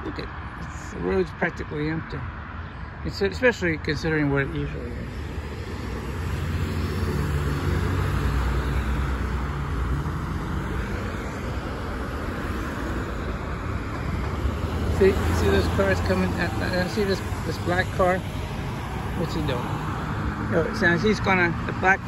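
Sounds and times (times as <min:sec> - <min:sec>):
cars driving past: 0:00.0 - 0:22.0.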